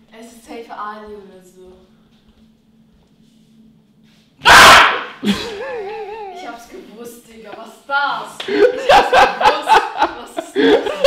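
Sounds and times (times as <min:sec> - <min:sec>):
person shouting loudly: 0:04.4 - 0:05.2.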